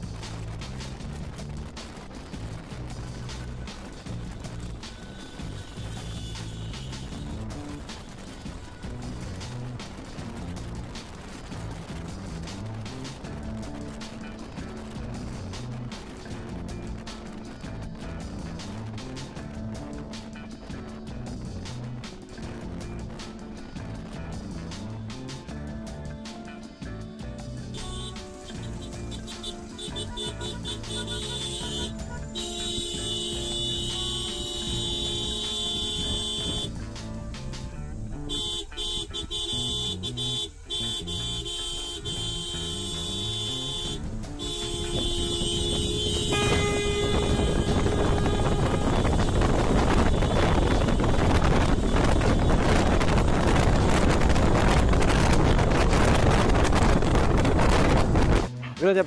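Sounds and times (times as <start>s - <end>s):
road and wind noise: 0.0s - 59.0s
car horns blasting: 5.0s - 7.4s, 27.7s - 36.8s, 38.2s - 53.6s.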